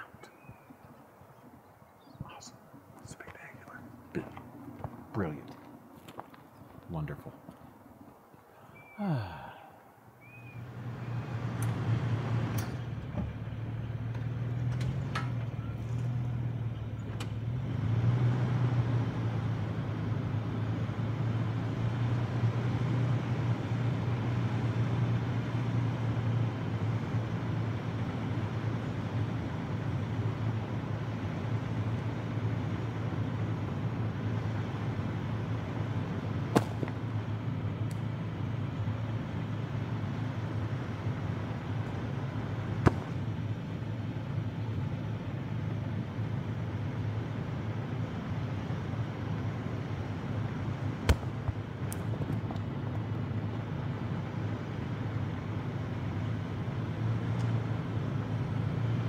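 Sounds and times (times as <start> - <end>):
vehicle engine idling: 0.0 - 59.0.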